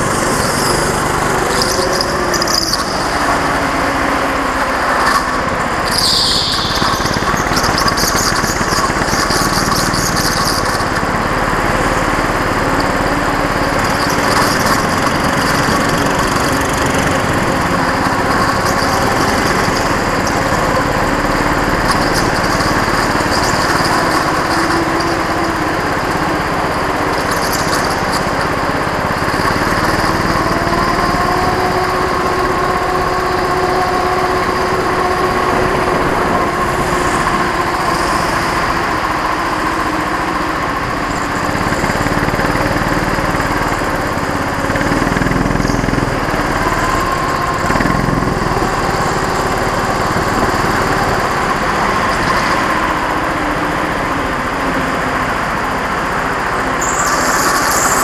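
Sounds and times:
go-kart engine running: 0.0 - 58.0.

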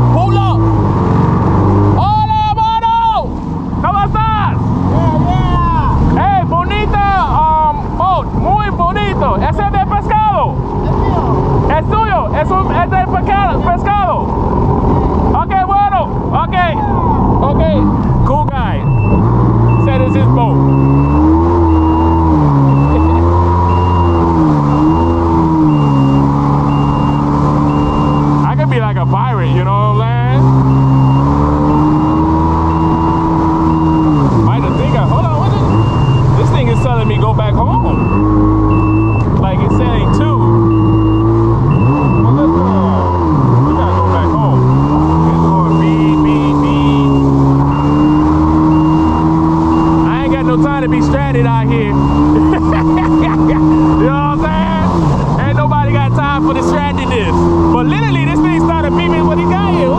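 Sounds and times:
jet ski engine revving: 0.0 - 15.4, 16.8 - 59.9
wind: 0.0 - 59.9
water rushing: 15.9 - 59.9.

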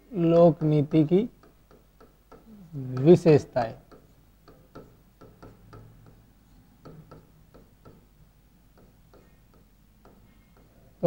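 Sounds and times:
marker pen writing on whiteboard: 0.2 - 8.1, 8.7 - 11.0.

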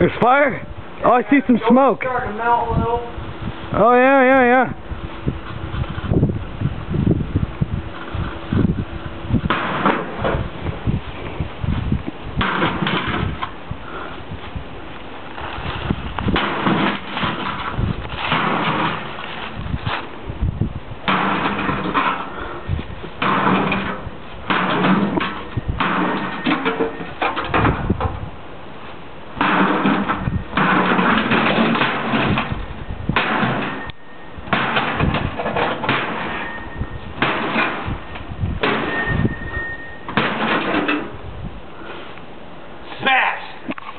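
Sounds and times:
axe hacking into metal: 16.3 - 17.6, 18.2 - 19.0, 21.1 - 22.3, 23.2 - 23.9, 24.5 - 26.8, 29.4 - 32.4, 33.2 - 33.9, 34.5 - 36.4, 37.2 - 37.9, 40.1 - 41.1
sheet metal clattering: 16.3 - 20.0, 21.1 - 22.5, 23.2 - 28.0, 29.4 - 32.6, 33.2 - 33.9, 34.5 - 38.0, 38.6 - 41.2.

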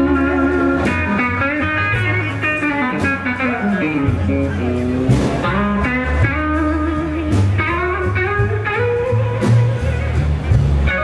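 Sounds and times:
drums: 0.0 - 11.0
electric guitar blues line: 0.0 - 11.0.

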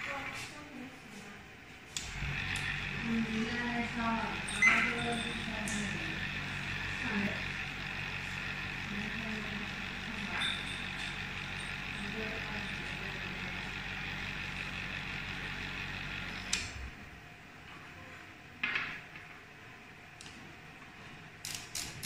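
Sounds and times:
vortex mixer motor hum: 1.9 - 17.2.

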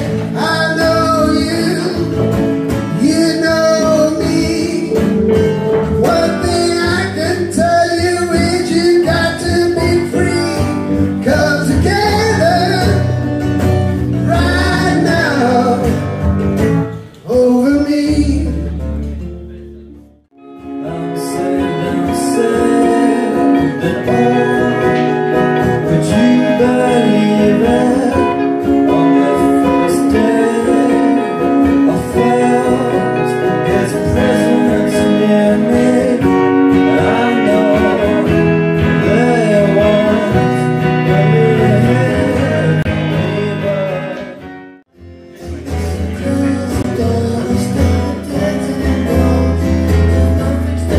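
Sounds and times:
person singing: 0.0 - 13.3, 14.1 - 16.2, 20.4 - 50.9
acoustic and electric guitars: 0.0 - 50.9.

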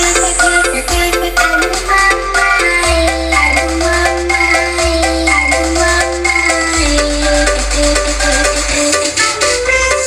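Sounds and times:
heavy sustained sub-bass: 0.0 - 9.9
melody of short stepped notes: 0.0 - 10.0.

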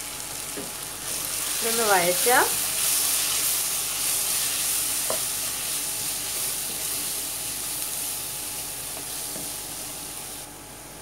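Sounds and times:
masala sizzling in a wok: 0.0 - 11.0.

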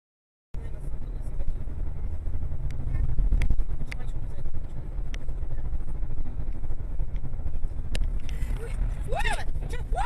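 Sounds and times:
car engine and tyres rumbling: 0.6 - 10.0.

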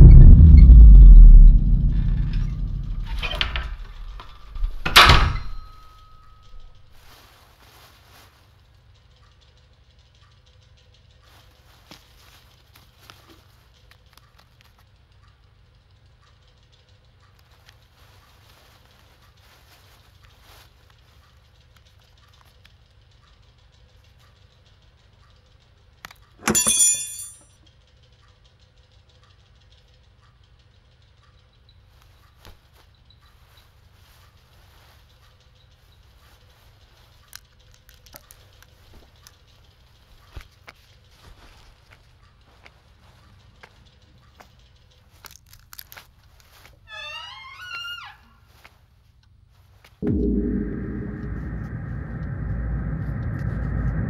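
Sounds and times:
loud shrill sting: 0.0 - 4.2, 50.0 - 54.0
low steady drone: 0.0 - 6.9, 50.0 - 54.0
faint clicks and ticks: 5.9 - 26.4, 27.6 - 46.9.

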